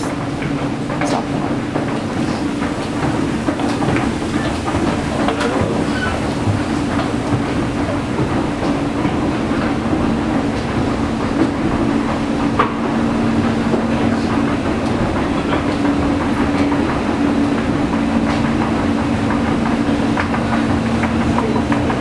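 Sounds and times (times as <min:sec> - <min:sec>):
escalator humming: 0:00.0 - 0:22.0.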